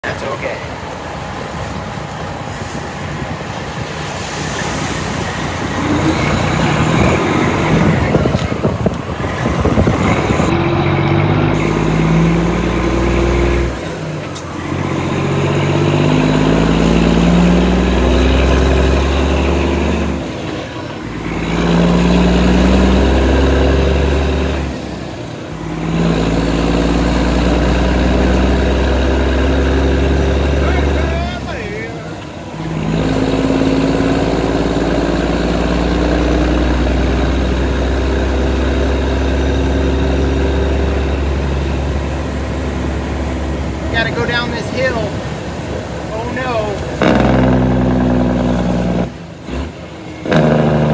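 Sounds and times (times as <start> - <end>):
truck engine shifting gears: 0.0 - 50.9.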